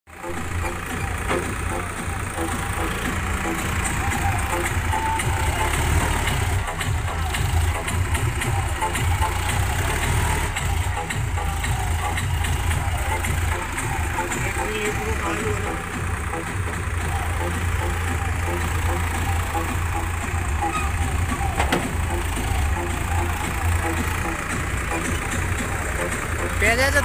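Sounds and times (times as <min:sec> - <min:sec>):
tractor engine rumbling: 0:00.0 - 0:27.0.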